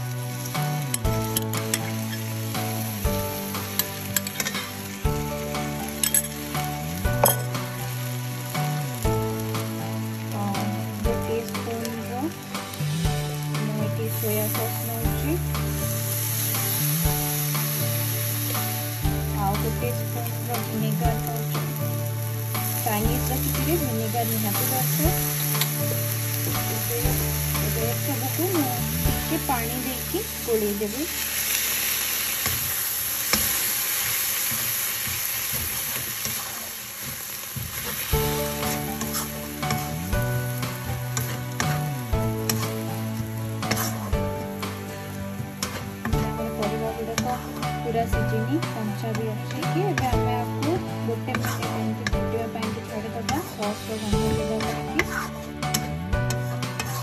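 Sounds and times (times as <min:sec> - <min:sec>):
background music with bass line: 0:00.0 - 0:32.0, 0:38.1 - 0:57.0
vegetables sizzling in a frying pan: 0:00.0 - 0:57.0
wooden spatula stirring: 0:37.6 - 0:47.8, 0:48.8 - 0:57.0.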